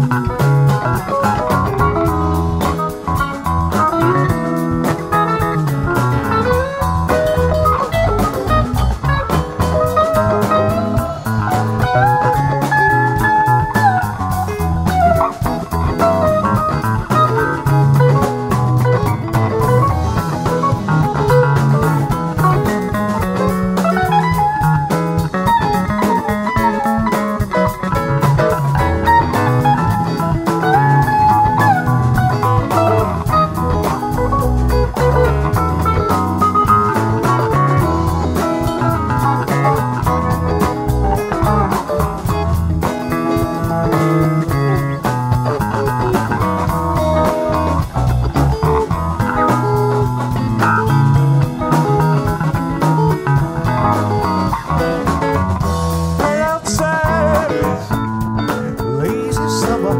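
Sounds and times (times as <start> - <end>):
drum kit: 0.0 - 59.9
electric bass: 0.0 - 59.9
electric guitar lead lines: 0.0 - 59.9.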